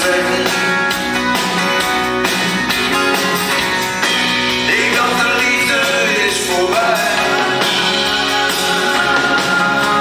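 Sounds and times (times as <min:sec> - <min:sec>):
live band music: 0:00.0 - 0:10.0
strummed acoustic guitar: 0:00.0 - 0:10.0.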